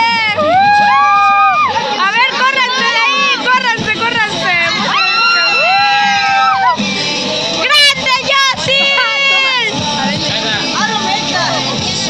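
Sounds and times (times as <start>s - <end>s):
young people yelling and shrieking: 0.0s - 9.8s
long high held cry: 4.9s - 6.8s.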